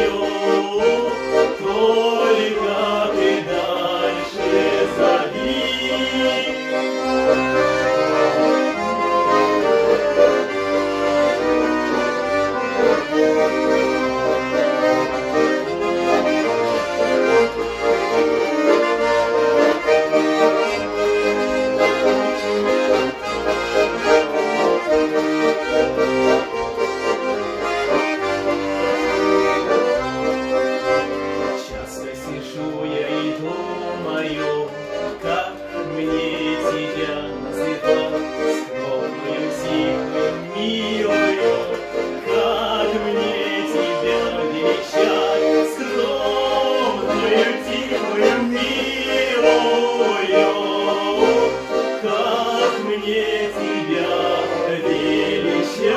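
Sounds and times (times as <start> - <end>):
accordions playing folk melody: 0.0 - 55.9.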